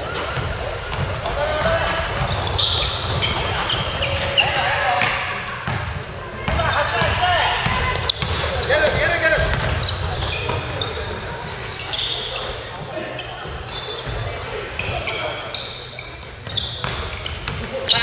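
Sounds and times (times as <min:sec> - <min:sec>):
players calling out: 0:00.0 - 0:18.0
sneakers squeaking: 0:00.0 - 0:18.0
basketball bouncing on wooden court: 0:00.3 - 0:12.0, 0:16.4 - 0:17.7.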